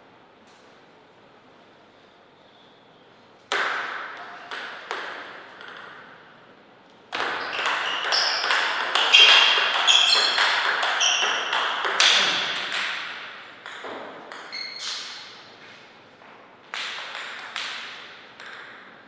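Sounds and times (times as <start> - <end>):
table tennis ball clicking: 7.1 - 14.6.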